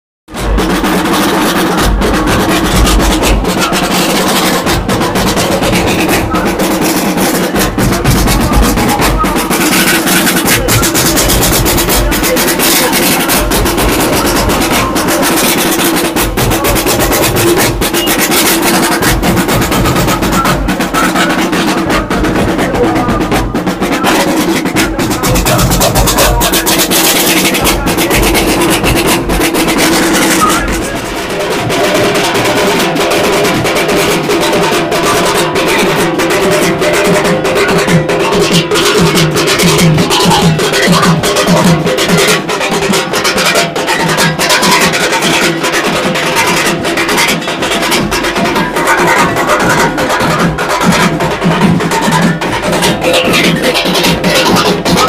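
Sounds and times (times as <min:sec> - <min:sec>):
snare drum rolls: 0:00.3 - 0:55.0.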